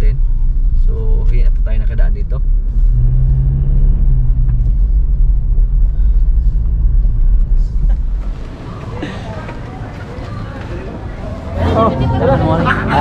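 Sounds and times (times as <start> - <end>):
car road rumble from inside: 0.0 - 13.0
outdoor background noise: 0.0 - 13.0
steady low hum: 0.0 - 13.0.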